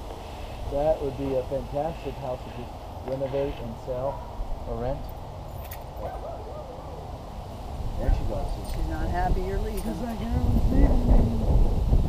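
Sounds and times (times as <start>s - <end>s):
steady low rumble: 0.0s - 12.0s
dog whining: 6.0s - 7.1s.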